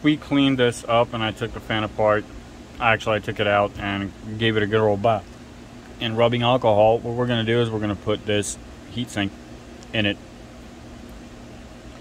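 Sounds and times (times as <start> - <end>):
faint constant tone: 0.0 - 12.0
low background hum: 0.0 - 12.0.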